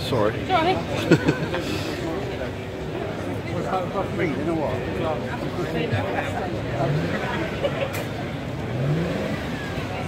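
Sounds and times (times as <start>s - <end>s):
crowd chatter: 0.0s - 10.0s
car engine revving: 6.5s - 10.0s.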